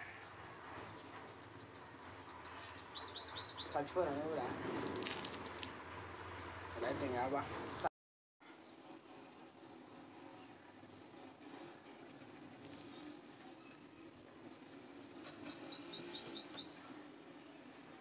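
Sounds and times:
small bird chirping: 0:00.4 - 0:03.9, 0:14.5 - 0:16.8.

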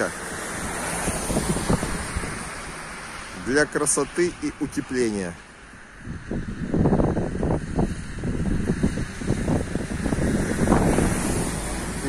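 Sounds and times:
wind buffeting microphone: 0:00.0 - 0:04.9, 0:05.8 - 0:12.0.

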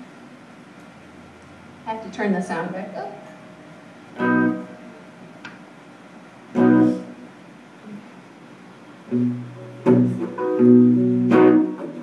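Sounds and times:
electric guitar note: 0:03.3 - 0:05.6, 0:06.5 - 0:08.0, 0:09.1 - 0:12.0.

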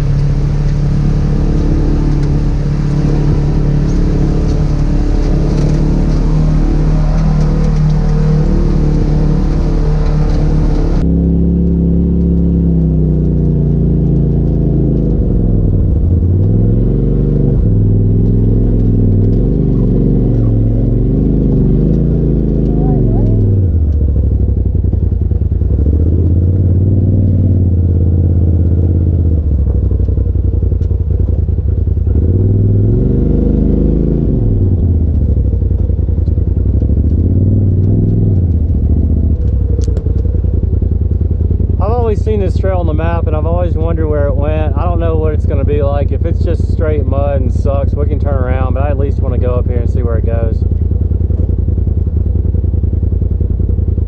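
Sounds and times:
utility vehicle engine revving: 0:00.0 - 0:54.0.

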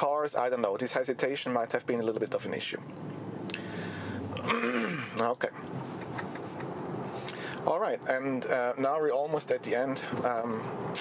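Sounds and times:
road and tyre noise in car: 0:00.3 - 0:11.0
man clearing throat: 0:04.4 - 0:05.2.

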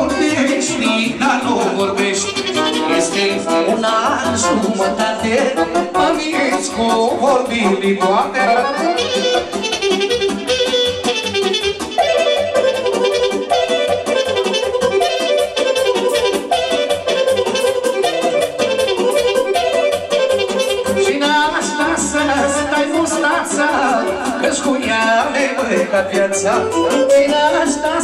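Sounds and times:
amplified folk dance music: 0:00.0 - 0:28.0.

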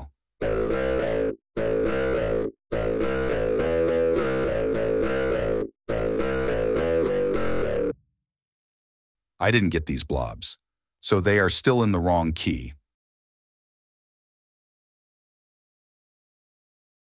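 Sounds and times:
polyphonic instrumental loop: 0:00.4 - 0:08.0.

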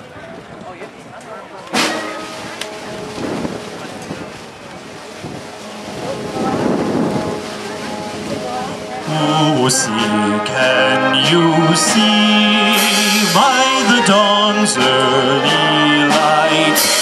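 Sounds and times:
crowd chatter: 0:00.0 - 0:17.0
concert band playing chords: 0:01.7 - 0:17.0.

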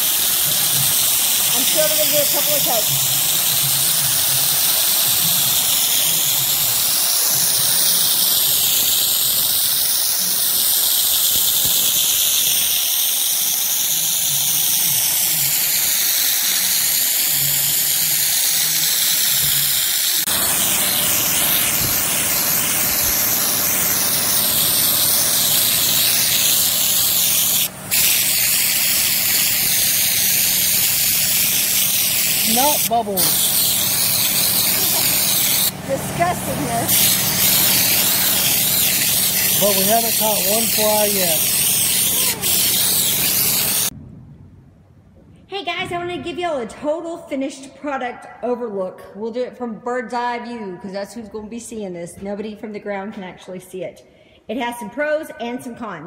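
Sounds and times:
spray gun hissing: 0:00.0 - 0:43.9.

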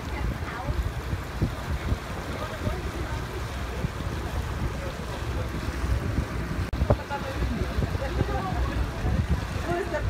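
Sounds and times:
lake water washing around boat: 0:00.0 - 0:10.0
wind buffeting microphone: 0:00.0 - 0:10.0.

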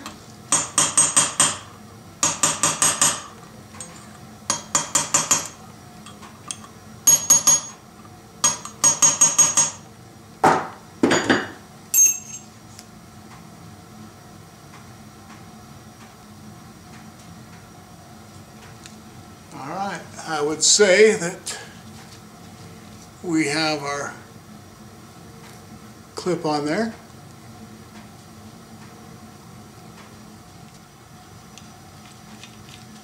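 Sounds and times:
hammer tapping on metal: 0:00.5 - 0:03.3, 0:04.5 - 0:05.6, 0:08.4 - 0:09.8.

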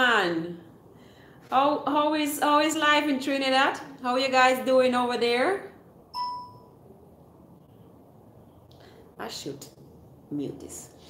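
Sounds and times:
electronic notification chime: 0:06.2 - 0:06.7.

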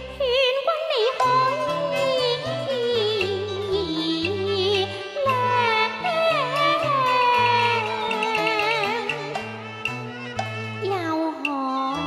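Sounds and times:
opera singing with wide vibrato: 0:00.0 - 0:09.4
sustained instrumental accompaniment: 0:00.0 - 0:12.0.

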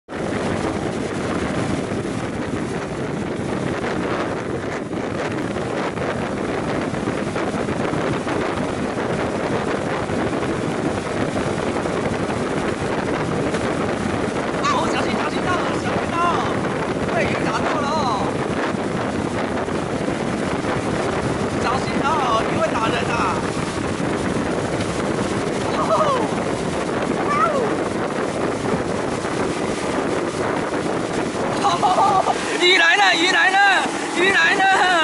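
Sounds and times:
boat wake churning: 0:00.0 - 0:35.0
boat engine: 0:00.1 - 0:35.0
wind buffeting microphone: 0:00.1 - 0:35.0.

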